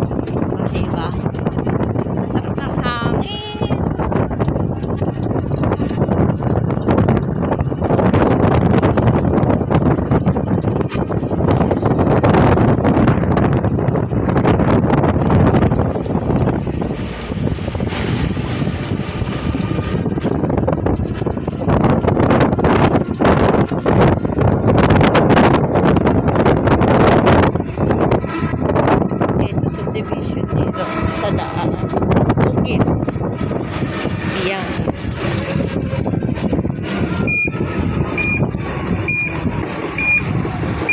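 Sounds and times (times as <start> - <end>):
vehicle in motion: 0.0 - 40.9
wind buffeting microphone: 0.0 - 40.9.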